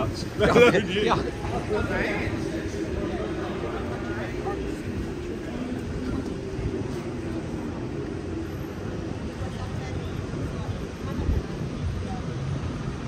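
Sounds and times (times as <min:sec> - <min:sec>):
passers-by chatter: 0:00.0 - 0:13.0
traffic rumble: 0:00.0 - 0:13.0.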